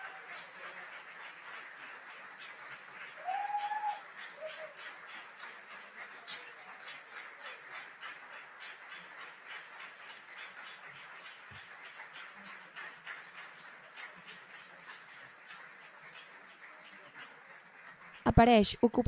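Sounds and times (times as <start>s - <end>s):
audience applauding: 0.0s - 18.4s.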